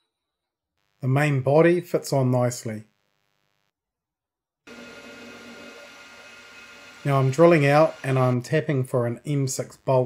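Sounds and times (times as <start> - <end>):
metal lathe running: 4.7 - 8.4.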